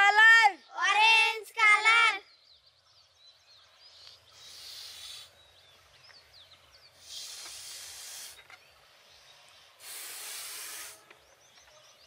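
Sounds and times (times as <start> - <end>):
faint bird chirps: 0.0 - 12.0
breathy hiss of balloon inflating: 4.3 - 5.3, 7.0 - 8.5, 9.8 - 11.1.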